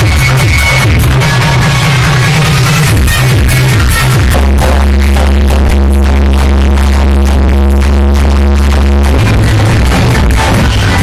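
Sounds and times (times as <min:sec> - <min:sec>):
loud electronic dance music: 0:00.0 - 0:11.0.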